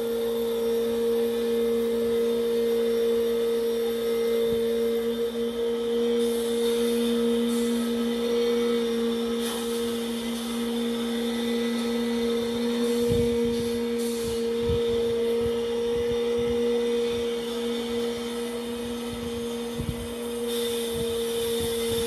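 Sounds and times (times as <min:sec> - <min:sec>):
machine humming: 0:00.0 - 0:22.0.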